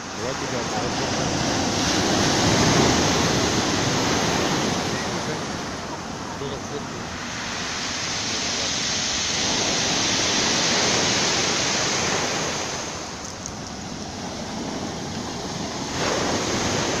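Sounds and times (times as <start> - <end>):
storm surf on pebble beach: 0.0 - 17.0.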